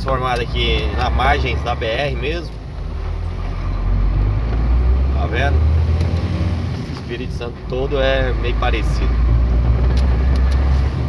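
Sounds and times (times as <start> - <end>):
road noise: 0.0 - 11.0
truck diesel engine droning: 0.0 - 11.0.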